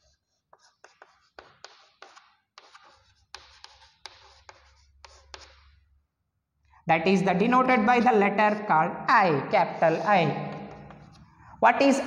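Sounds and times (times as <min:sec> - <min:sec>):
chalk scratching on chalkboard: 0:00.0 - 0:05.8, 0:09.7 - 0:11.3.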